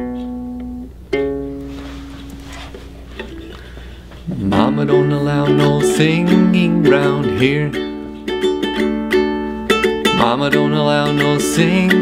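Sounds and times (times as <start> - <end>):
nylon-string guitar strummed: 0.0 - 12.0.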